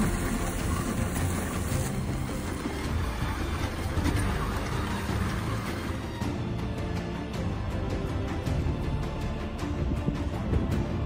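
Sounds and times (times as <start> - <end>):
sled runners scraping on snow: 0.0 - 6.2.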